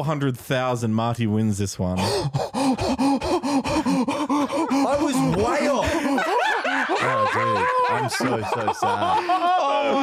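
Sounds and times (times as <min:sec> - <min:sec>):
man laughing breathily: 0:02.0 - 0:10.0.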